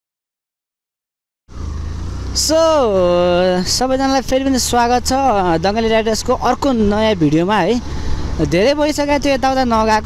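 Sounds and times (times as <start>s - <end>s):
motorcycle engine rumble: 1.5s - 10.0s
man talking: 2.3s - 10.0s.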